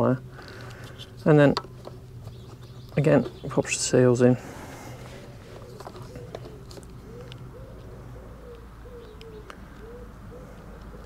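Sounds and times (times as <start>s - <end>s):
pigeon cooing: 4.5s - 11.0s.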